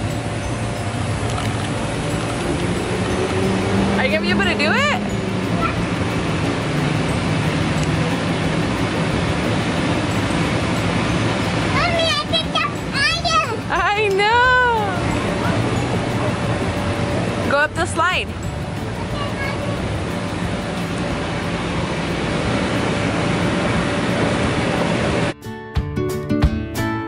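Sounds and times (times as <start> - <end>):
acoustic guitar music: 0.0 - 23.2, 25.0 - 27.0
rushing background noise: 0.0 - 25.4.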